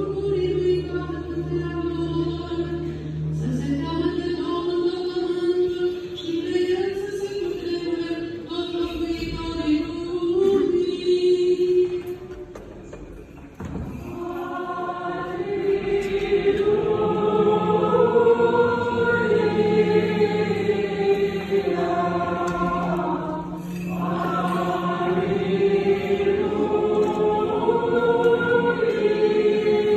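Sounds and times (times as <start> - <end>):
choir chanting in reverberant church: 0.0 - 29.9.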